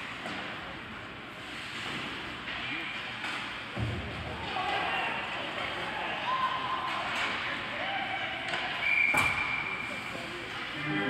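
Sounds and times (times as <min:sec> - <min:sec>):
voices and rink noise: 0:00.0 - 0:11.0.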